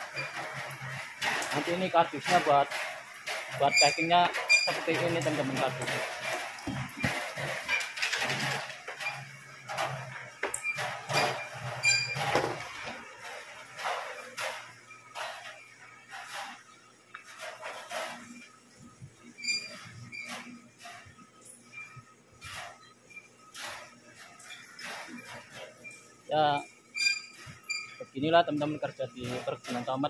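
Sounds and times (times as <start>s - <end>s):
knocks and clatter: 0.0s - 16.6s.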